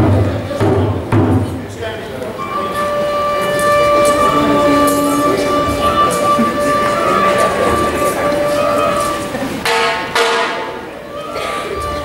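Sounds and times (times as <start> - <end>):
dhol drum strokes: 0.0 - 1.7, 2.4 - 10.8
wind instrument high note: 2.4 - 10.1.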